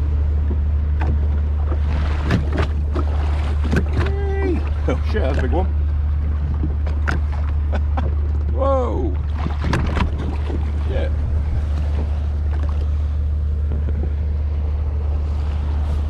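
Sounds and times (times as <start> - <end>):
steady low drone: 0.0 - 16.0
water slapping and splashing: 0.0 - 16.0.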